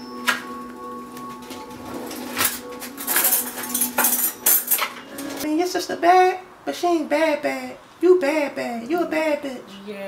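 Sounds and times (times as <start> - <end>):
cutlery rattling in a drawer: 2.2 - 5.4.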